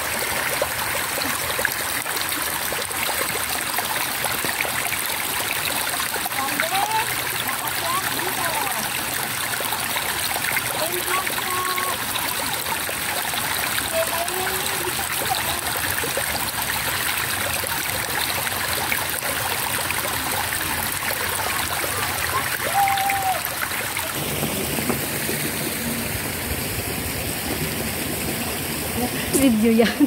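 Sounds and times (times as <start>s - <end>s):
stream trickling over rocks: 0.0s - 30.0s.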